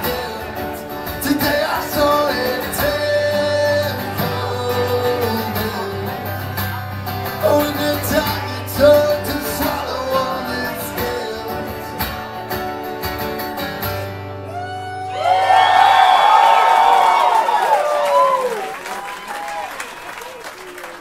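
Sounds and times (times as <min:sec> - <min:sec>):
crowd cheering and shouting: 0:00.0 - 0:11.4, 0:14.4 - 0:21.0
man singing: 0:00.0 - 0:12.4
strummed acoustic guitar: 0:00.0 - 0:14.8.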